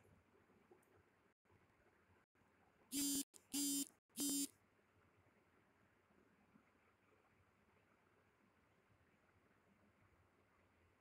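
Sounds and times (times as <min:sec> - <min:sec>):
phone notification buzzes: 0:03.0 - 0:04.5.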